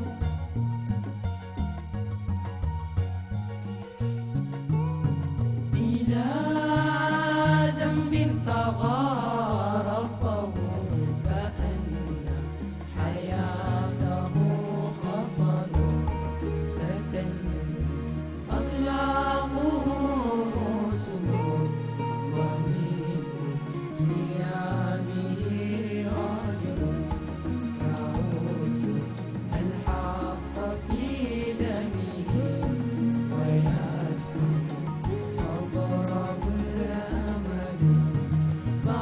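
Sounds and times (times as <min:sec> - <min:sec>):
electronic keyboard accompaniment: 0:00.0 - 0:39.0
male vocal group singing: 0:05.7 - 0:39.0.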